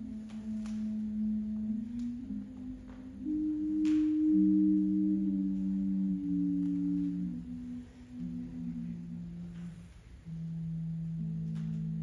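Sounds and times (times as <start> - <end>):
ocarina duet: 0.0 - 12.0.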